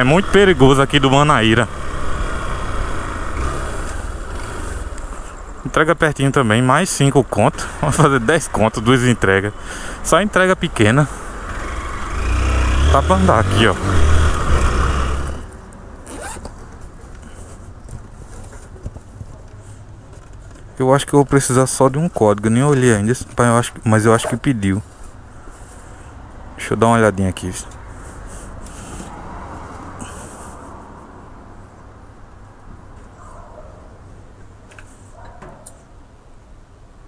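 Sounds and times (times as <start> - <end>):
motorcycle engine rumble: 0.0 - 5.8
wind and road noise: 0.0 - 37.0
bag zipper being pulled open: 16.0 - 16.5.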